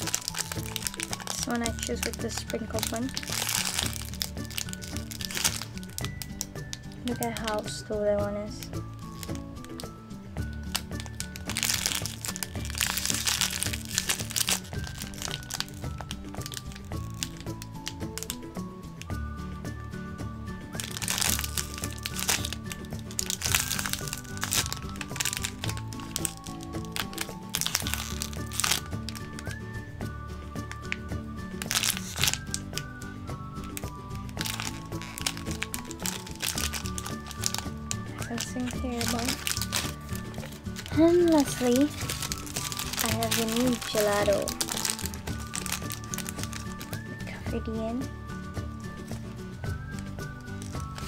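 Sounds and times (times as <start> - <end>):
plastic bag crinkling: 0.0 - 7.9, 8.5 - 19.2, 20.8 - 29.6, 30.6 - 47.4, 49.8 - 51.0
background music: 0.0 - 51.0.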